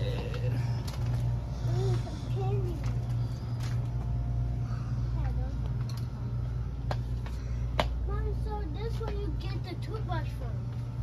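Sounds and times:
low shop hum: 0.0 - 11.0.

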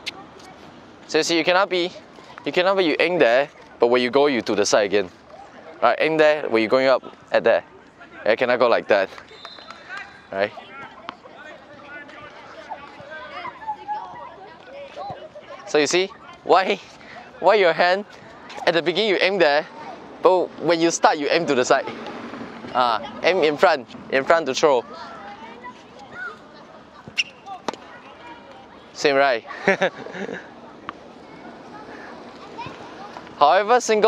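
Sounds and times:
faint voices talking: 0.0 - 34.0.

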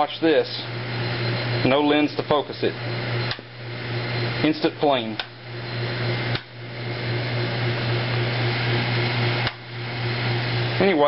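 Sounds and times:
electrical hum with hiss: 0.0 - 11.0.

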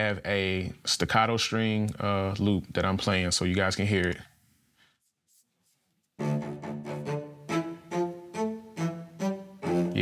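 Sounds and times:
staccato string loop: 6.2 - 10.0.

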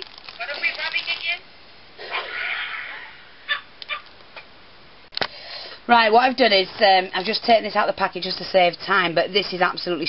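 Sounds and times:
dog yipping: 3.5 - 4.1.

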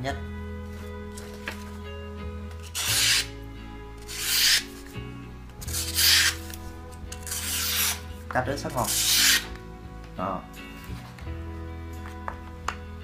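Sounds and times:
background music: 0.0 - 13.0
knife slicing paper: 2.6 - 3.3, 4.0 - 4.8, 5.6 - 6.6, 7.2 - 8.0, 8.8 - 9.5.

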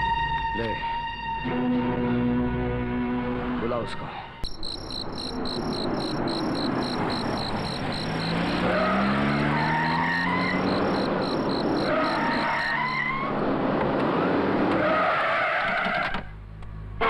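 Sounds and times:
crickets chirping: 4.4 - 13.1
car engines revving: 4.7 - 15.9
tyre squeals: 5.0 - 13.3.

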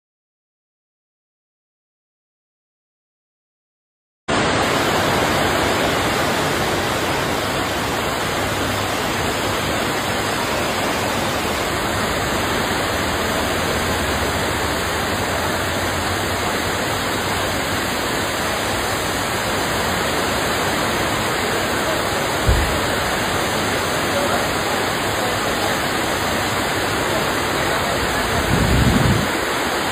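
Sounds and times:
heavy rain hissing: 4.3 - 29.9
low thump: 22.4 - 23.0.

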